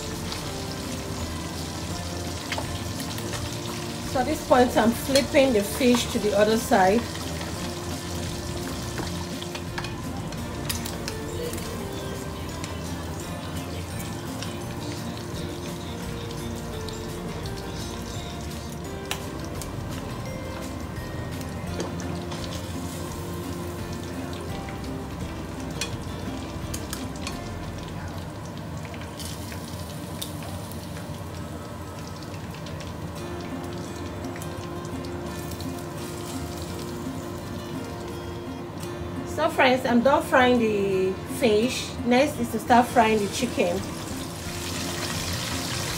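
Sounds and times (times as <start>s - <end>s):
background music: 0.0s - 45.9s
fish sizzling in hot oil: 0.0s - 45.9s
metal tongs clicking on pan: 5.0s - 6.3s, 9.0s - 11.8s.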